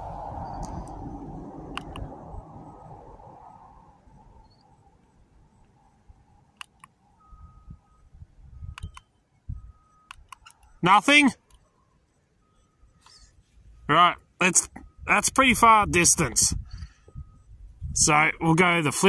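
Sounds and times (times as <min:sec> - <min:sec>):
rushing background noise: 0:00.0 - 0:18.6
plastic doorbell button clicking: 0:08.7 - 0:09.1.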